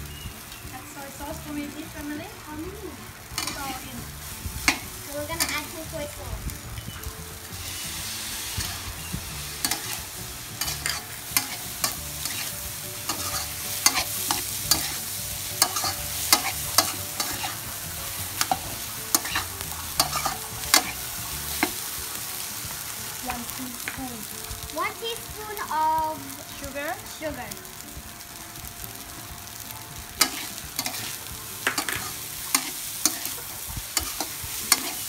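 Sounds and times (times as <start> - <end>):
rice sizzling in a wok: 0.0 - 35.0
metal ladle scraping a wok: 9.5 - 17.6, 18.4 - 21.8, 30.2 - 35.0.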